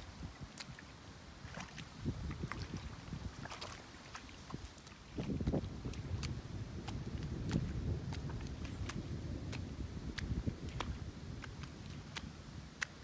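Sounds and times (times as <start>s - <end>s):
wet mud sloshing and scraping: 0.0s - 13.0s.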